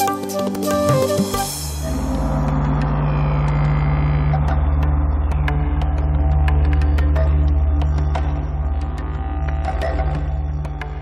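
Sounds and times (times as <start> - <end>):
low drone with throbbing pulse: 1.6 - 11.0.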